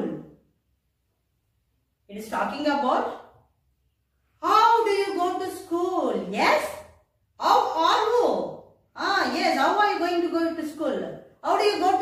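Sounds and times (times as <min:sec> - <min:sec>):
woman speaking: 0:02.1 - 0:03.3, 0:04.4 - 0:12.0.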